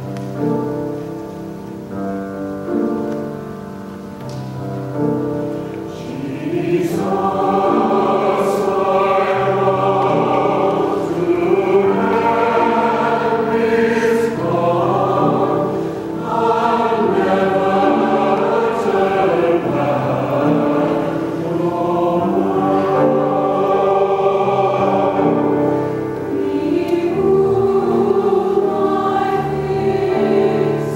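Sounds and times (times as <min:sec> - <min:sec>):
choir singing: 0:05.9 - 0:30.9.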